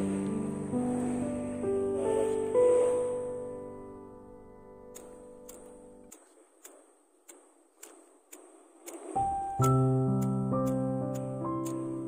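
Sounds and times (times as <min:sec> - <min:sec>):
background music: 0:00.0 - 0:06.3, 0:09.0 - 0:12.0.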